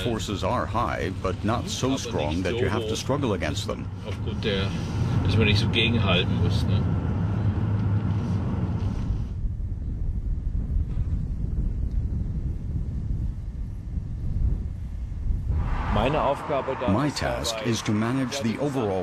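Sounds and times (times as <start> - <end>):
car engine and road rumble: 0.0 - 19.0.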